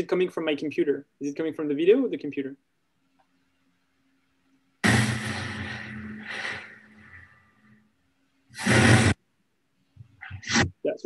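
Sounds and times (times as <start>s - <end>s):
short electronic burst: 4.8s - 7.2s, 8.6s - 9.2s
long electronic sound: 4.8s - 7.3s.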